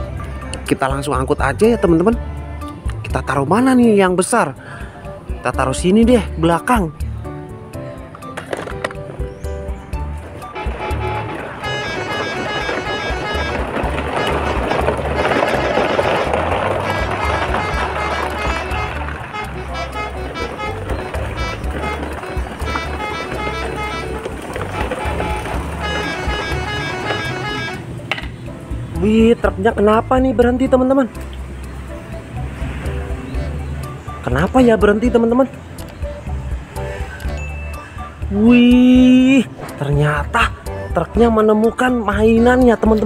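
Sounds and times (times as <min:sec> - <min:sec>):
music with steady beat: 0:17.5 - 0:28.8.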